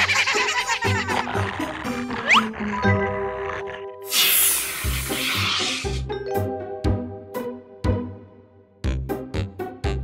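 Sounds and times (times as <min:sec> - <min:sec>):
background music: 0:00.0 - 0:10.0
spray can hissing: 0:04.1 - 0:05.8.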